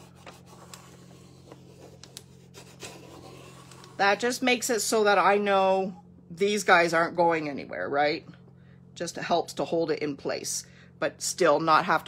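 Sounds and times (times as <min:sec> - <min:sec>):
scratchy rubbing: 0:00.0 - 0:04.1.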